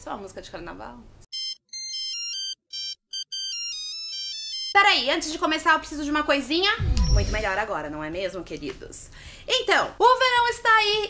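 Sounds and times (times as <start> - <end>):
electronic beeping jingle: 6.8 - 7.6.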